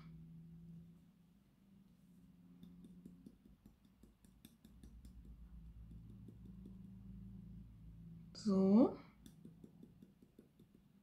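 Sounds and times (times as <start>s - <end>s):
low steady hum: 0.0s - 11.0s
fingers working through hair: 2.5s - 7.0s, 9.2s - 11.0s.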